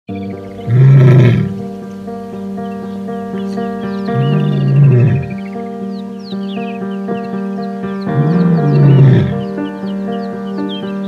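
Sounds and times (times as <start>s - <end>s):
background music: 0.1s - 11.0s
lioness calling: 0.4s - 1.7s, 3.3s - 5.6s, 8.0s - 10.4s.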